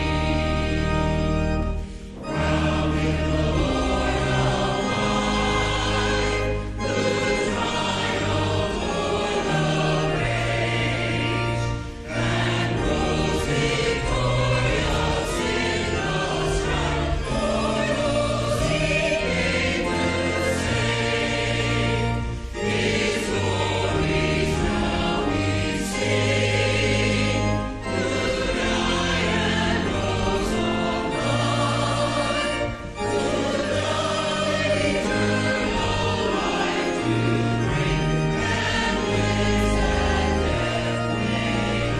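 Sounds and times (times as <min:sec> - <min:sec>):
choir singing: 0:00.0 - 0:41.9
keyboard accompaniment: 0:00.0 - 0:41.9.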